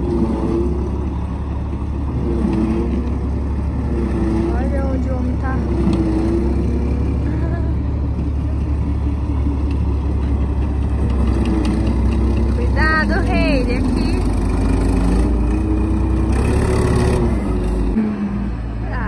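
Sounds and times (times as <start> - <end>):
tank engine humming: 0.0 - 19.0
tracked tank driving past: 0.0 - 19.0.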